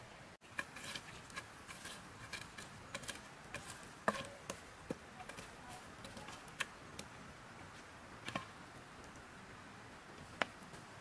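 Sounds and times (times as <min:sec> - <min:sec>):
charcoal fire crackling: 0:00.4 - 0:11.0.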